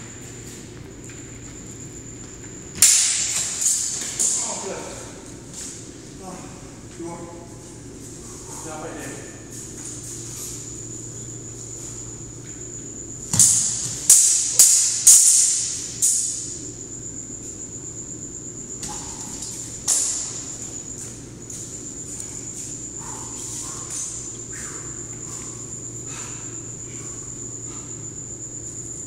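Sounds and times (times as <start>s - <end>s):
swords clashing: 2.8s - 4.5s, 13.4s - 16.4s.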